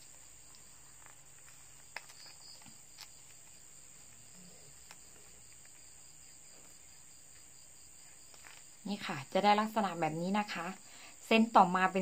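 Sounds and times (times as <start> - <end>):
ribbon clicks and rustles: 0.0 - 5.9
faint high-pitched hiss: 0.0 - 12.0.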